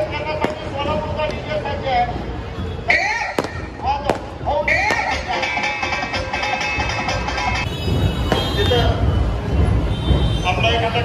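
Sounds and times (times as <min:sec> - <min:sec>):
fireworks bangs: 0:03.4 - 0:05.3, 0:07.8 - 0:10.4.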